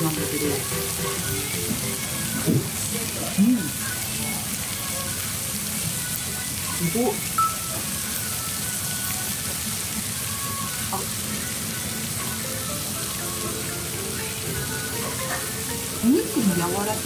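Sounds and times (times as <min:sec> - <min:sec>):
meat sizzling on hot iron plate: 0:00.0 - 0:17.0.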